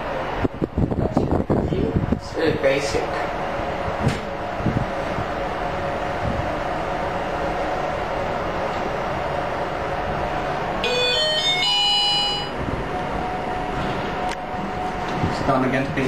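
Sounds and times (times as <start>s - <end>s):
elevator ride hum: 0.0s - 16.0s
elevator arrival chime: 10.8s - 15.0s.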